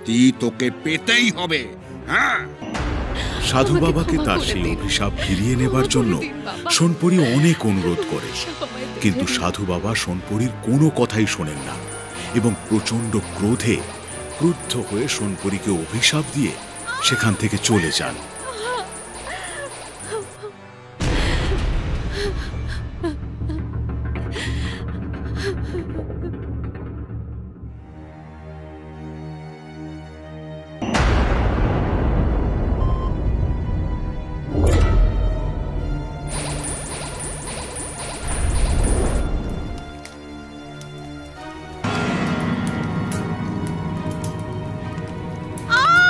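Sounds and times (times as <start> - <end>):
background music with sustained tones: 0.0 - 46.0
woman sobbing: 3.1 - 9.4, 16.9 - 26.5
woman wailing: 3.5 - 9.2, 16.9 - 17.4, 18.4 - 20.5, 45.7 - 46.0.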